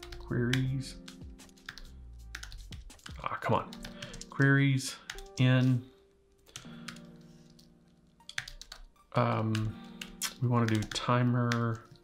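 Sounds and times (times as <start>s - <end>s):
keyboard typing: 0.0s - 5.8s, 6.4s - 12.0s.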